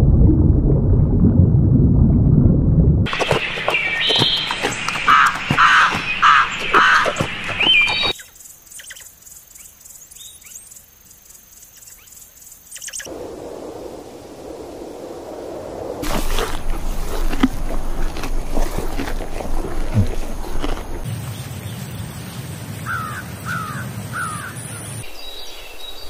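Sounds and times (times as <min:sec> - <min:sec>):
bird calls: 0:03.1 - 0:10.8, 0:11.6 - 0:13.1, 0:22.8 - 0:26.0
crows cawing: 0:05.0 - 0:07.7, 0:22.9 - 0:24.6.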